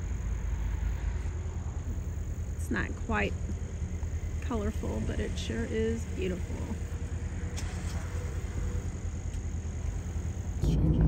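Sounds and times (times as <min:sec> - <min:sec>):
truck engine and road noise: 0:00.0 - 0:11.0.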